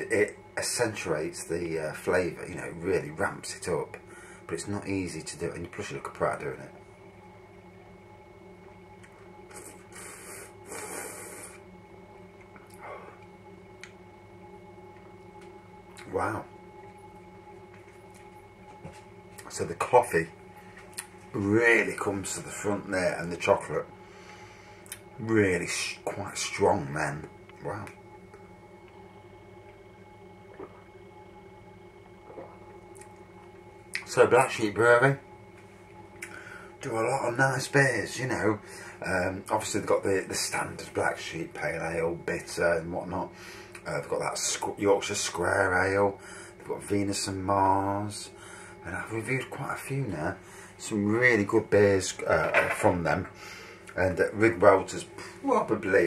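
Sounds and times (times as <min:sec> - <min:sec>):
faint electrical hum: 0:00.0 - 0:56.0.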